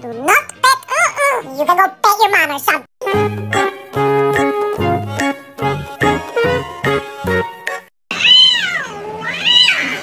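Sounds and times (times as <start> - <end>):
light plucked background music: 0.0 - 7.9
cat yowling: 8.1 - 10.0.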